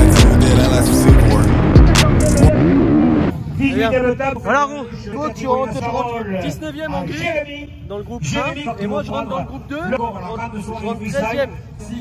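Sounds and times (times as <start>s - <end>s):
man talking: 0.0s - 2.6s
motorbike engines revving: 0.0s - 3.8s.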